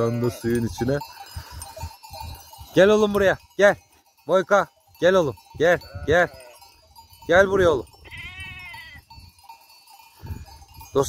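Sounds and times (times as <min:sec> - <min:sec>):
sheep bleating: 0:05.8 - 0:06.6, 0:08.0 - 0:09.0.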